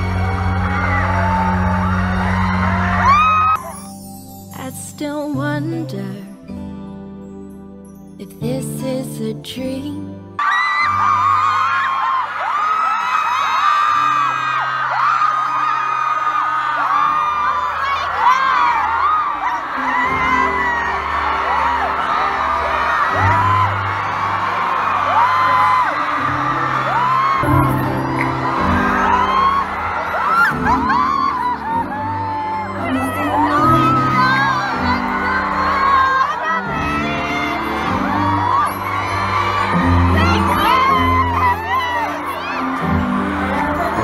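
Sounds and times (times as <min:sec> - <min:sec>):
crowd screaming and cheering: 0:00.0 - 0:04.1, 0:10.4 - 0:44.0
soft background music: 0:03.0 - 0:11.8, 0:13.8 - 0:44.0
performers singing: 0:32.8 - 0:38.9.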